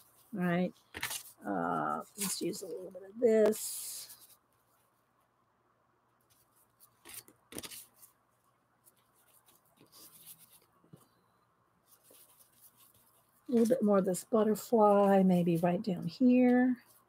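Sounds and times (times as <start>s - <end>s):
paper pieces tapping and rustling: 0.8s - 1.4s, 6.9s - 8.1s.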